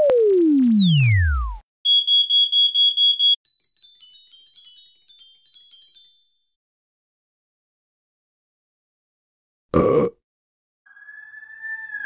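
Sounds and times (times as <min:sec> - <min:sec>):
falling pitch glide: 0:00.0 - 0:01.6
high twinkling notes: 0:03.4 - 0:06.5.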